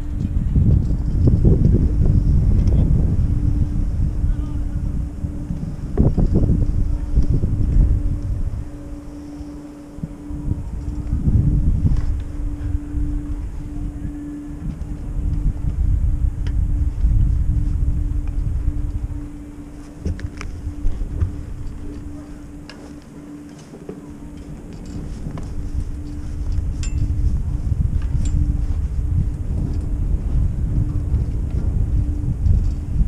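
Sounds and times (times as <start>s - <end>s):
low hum of chairlift: 0.0s - 33.0s
wind buffeting microphone: 0.0s - 33.0s.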